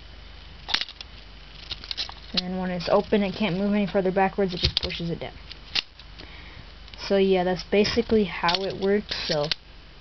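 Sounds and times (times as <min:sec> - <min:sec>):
faint steady hum: 0:00.0 - 0:10.0
plastic gears clicking: 0:08.4 - 0:09.6.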